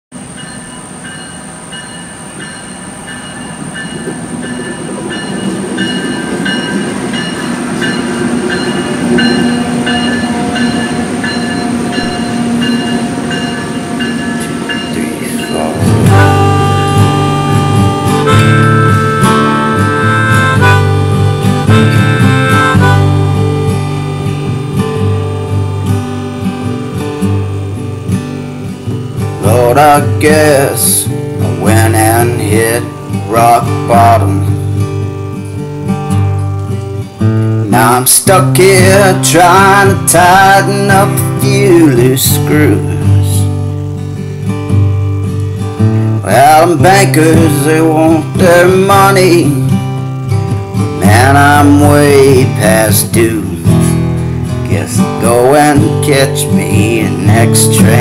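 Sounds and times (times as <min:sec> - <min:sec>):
train rumble: 0:00.1 - 0:35.7, 0:37.0 - 0:43.6
steady ringing tones: 0:00.2 - 0:19.9
music with low chords: 0:00.4 - 0:30.2.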